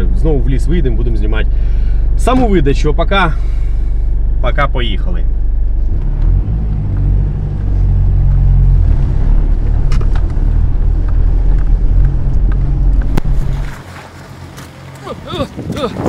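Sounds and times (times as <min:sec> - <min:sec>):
diesel engine driving past: 0:00.0 - 0:15.2.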